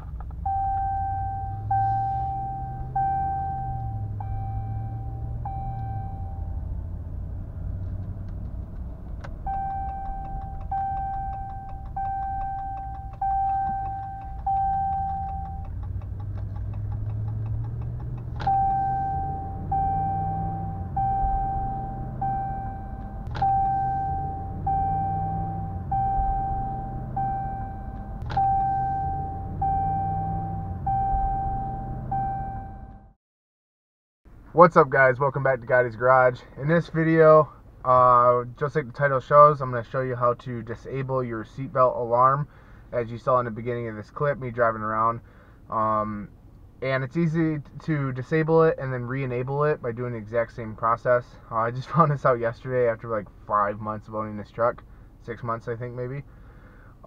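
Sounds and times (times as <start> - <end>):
engine and road noise: 0.0 - 33.2, 34.3 - 57.0
seatbelt warning chime: 0.4 - 6.7, 9.4 - 17.8, 18.4 - 33.1
sharp clicks: 8.0 - 18.6.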